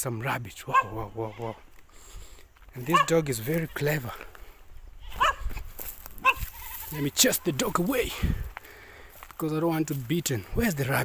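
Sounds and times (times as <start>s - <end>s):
goat bleating: 0.7s - 1.6s, 5.0s - 5.5s, 6.2s - 8.0s.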